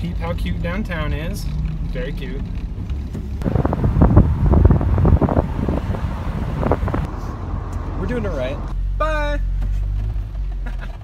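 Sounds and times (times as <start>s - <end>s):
engine and road rumble: 0.0s - 11.0s
wind buffeting microphone: 3.2s - 7.9s.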